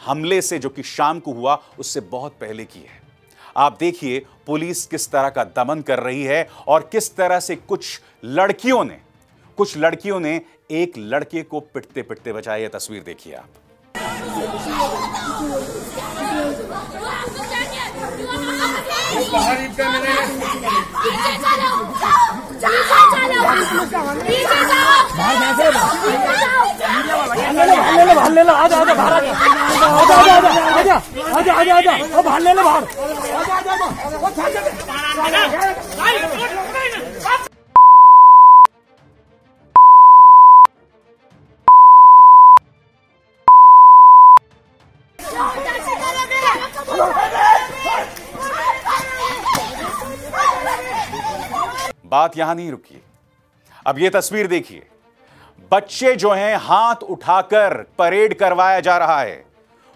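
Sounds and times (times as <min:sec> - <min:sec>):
women shouting: 0:20.7 - 0:28.2
electronic bleep tones: 0:37.8 - 0:38.7, 0:39.8 - 0:40.7, 0:41.7 - 0:42.6, 0:43.5 - 0:44.4.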